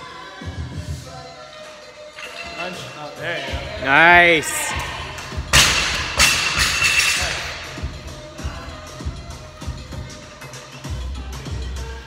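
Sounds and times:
music with steady beat: 0:03.5 - 0:12.0
barbell plates bouncing and rattling: 0:05.5 - 0:07.4.

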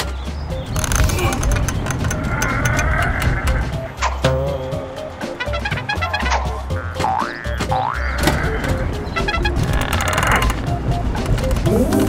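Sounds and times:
background music: 0:00.0 - 0:12.0
cartoon spring boing: 0:06.3 - 0:08.5.

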